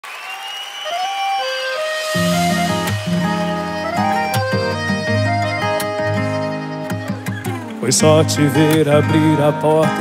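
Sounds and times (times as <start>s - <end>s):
crowd applause: 0.0s - 5.4s.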